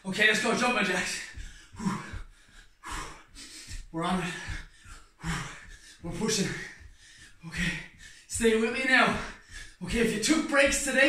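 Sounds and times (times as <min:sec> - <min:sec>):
man breathing hard: 0:01.0 - 0:10.2.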